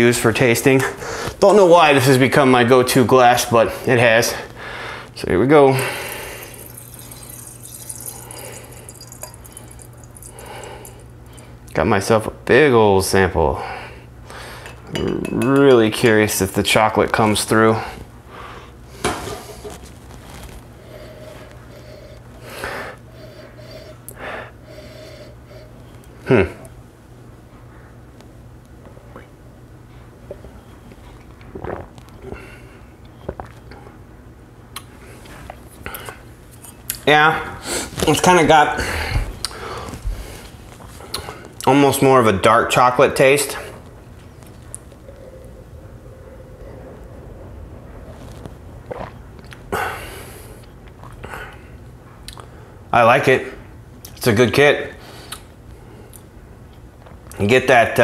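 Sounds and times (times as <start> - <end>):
steady low hum: 0.0 - 58.0
liquid trickling into glass: 5.8 - 11.5
man sipping from a glass: 5.9 - 11.1
soft mouth and lip sounds: 33.0 - 33.8, 48.2 - 49.7, 55.2 - 57.4.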